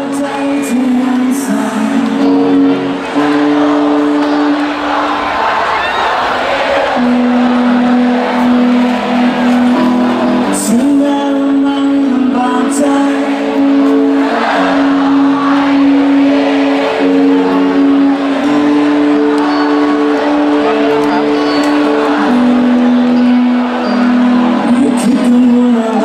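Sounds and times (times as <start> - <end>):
crowd noise: 0.0 - 26.0
live rock band playing: 0.0 - 26.0
rock band sustained chord: 1.9 - 10.7.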